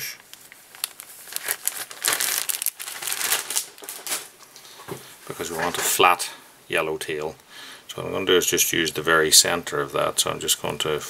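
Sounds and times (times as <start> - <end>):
dry crinkling and rustling: 0.3 - 6.1.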